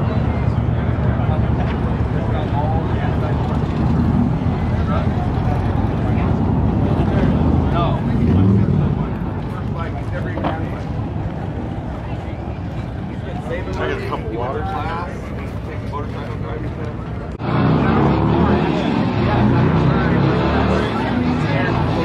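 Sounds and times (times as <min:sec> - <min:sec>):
crowd voices: 0:00.0 - 0:22.0
motorcycle engines rumbling: 0:00.0 - 0:22.0.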